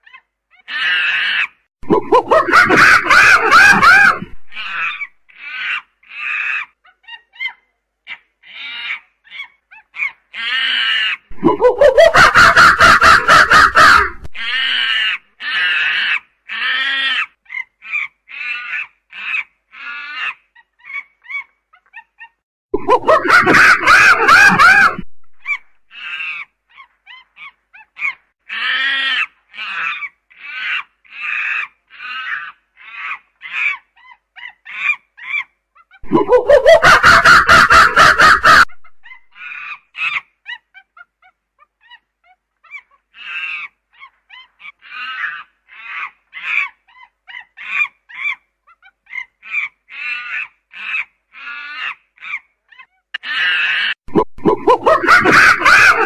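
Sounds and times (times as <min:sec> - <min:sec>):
chimpanzee screams: 0:00.0 - 0:56.0.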